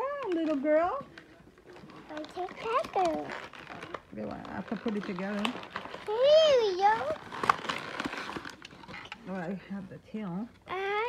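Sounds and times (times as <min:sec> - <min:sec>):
child's high-pitched voice: 0:02.1 - 0:03.4, 0:06.1 - 0:07.2, 0:10.7 - 0:11.0.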